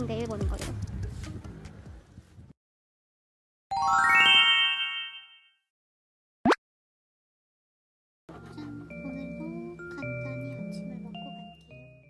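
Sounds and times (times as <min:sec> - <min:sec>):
rising bell-like chime sparkle: 0:03.7 - 0:05.5.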